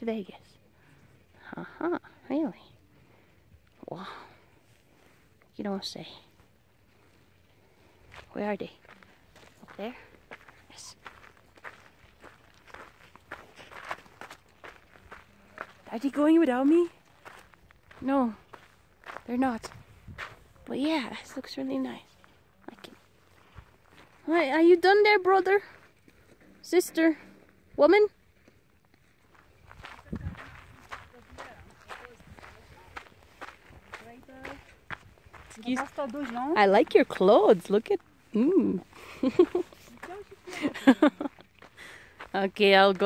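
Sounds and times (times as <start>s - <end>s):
footsteps on gravel: 7.8s - 24.8s, 27.6s - 43.0s.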